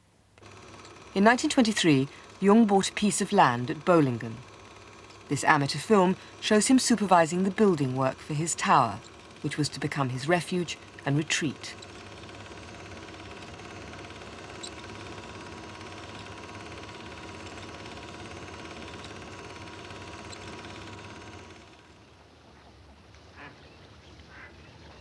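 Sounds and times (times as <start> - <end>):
steady hum with hiss: 0.0 - 25.0
ducks quacking: 24.3 - 24.5.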